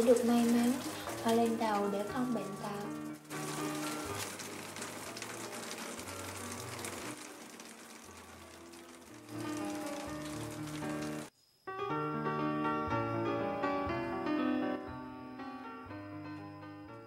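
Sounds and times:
water falling and dripping: 0.0s - 11.3s
background music: 0.0s - 17.0s.

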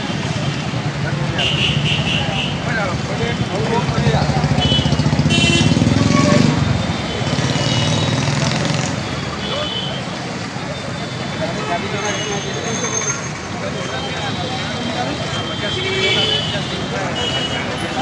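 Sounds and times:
crowd talking: 0.0s - 18.0s
motorcycle engines running: 2.6s - 9.3s.

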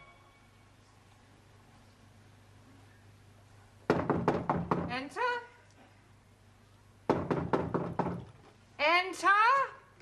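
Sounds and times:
knocking on a door: 3.9s - 4.9s, 7.1s - 8.3s.

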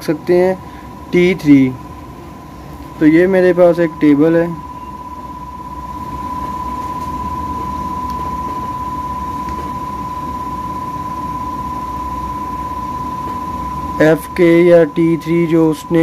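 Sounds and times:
constant high-pitched tone: 0.0s - 16.0s.

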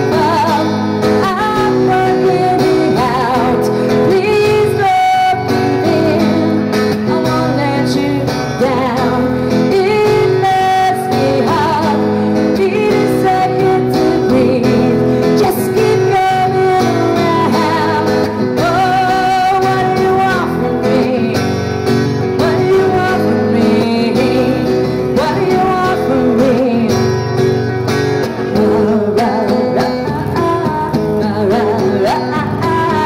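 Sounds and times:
woman singing with vibrato: 0.0s - 27.3s, 28.3s - 33.0s
strummed acoustic guitar: 0.0s - 33.0s.

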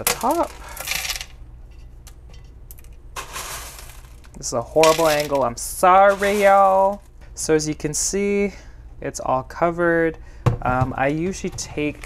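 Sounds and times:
clay pebbles rattling into pot: 0.0s - 1.4s, 2.2s - 7.2s, 11.4s - 12.0s.

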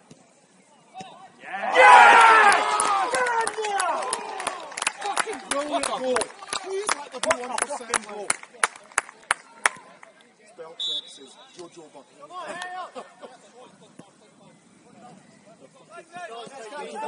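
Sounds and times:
people shouting: 1.4s - 4.5s
people clapping: 2.1s - 10.3s.

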